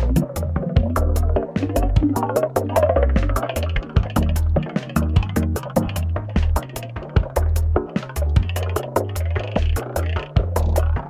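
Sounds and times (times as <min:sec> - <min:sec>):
drum machine beat: 0:00.0 - 0:11.0
synth bass line: 0:00.0 - 0:11.0.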